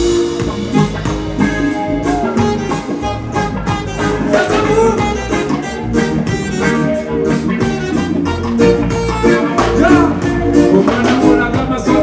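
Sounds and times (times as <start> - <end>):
drum kit playing a steady beat: 0.0 - 12.0
electric guitar playing: 0.0 - 12.0.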